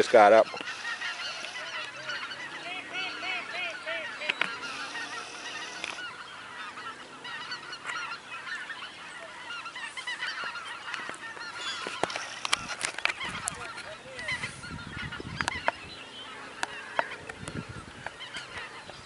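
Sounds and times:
geese honking in flight: 0.0 - 19.0.

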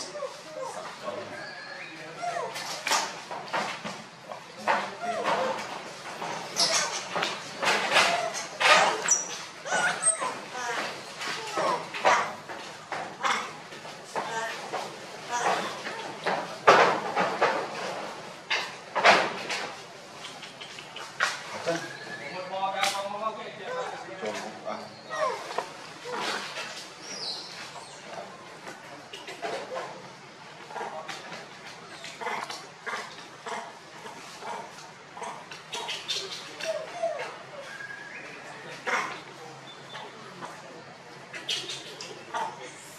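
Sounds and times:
macaques squeaking: 0.0 - 3.2, 4.6 - 12.4, 20.2 - 23.1, 31.8 - 40.6, 41.2 - 42.8
voices: 0.0 - 42.9
young monkeys calling: 4.9 - 12.3, 31.9 - 40.6, 41.3 - 42.8.

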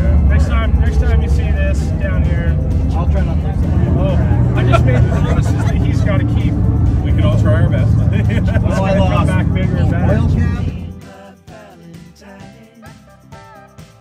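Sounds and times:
men talking over one another: 0.0 - 11.0
steady low rumble: 0.0 - 11.0
background music: 0.0 - 14.0.

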